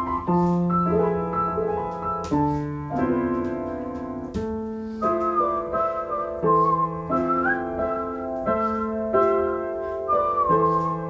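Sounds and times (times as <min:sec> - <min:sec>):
upright piano chords: 0:00.0 - 0:11.0
whistled melody: 0:04.7 - 0:11.0.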